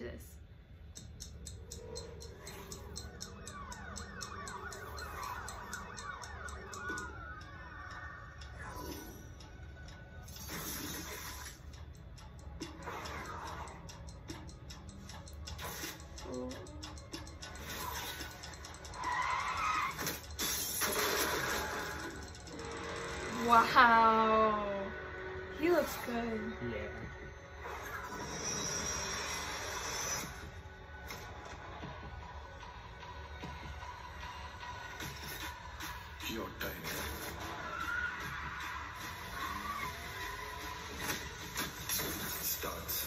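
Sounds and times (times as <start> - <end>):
clock-like ticking: 0.4 - 43.0
swooping siren-like tones: 1.4 - 11.7, 16.8 - 36.2, 36.8 - 43.0.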